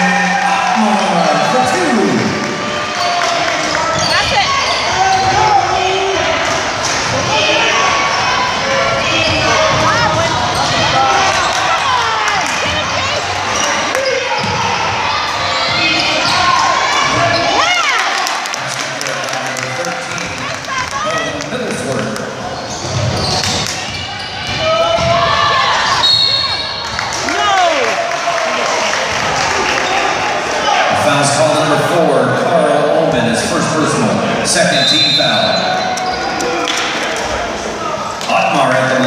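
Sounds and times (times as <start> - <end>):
voices echoing in gym: 0.0 - 39.0.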